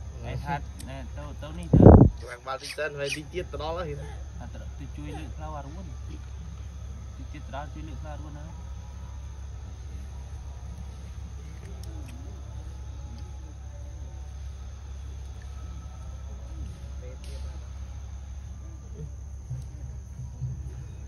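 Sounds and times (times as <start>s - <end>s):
low rumble: 0.0s - 2.5s
faint indistinct voices: 0.0s - 21.0s.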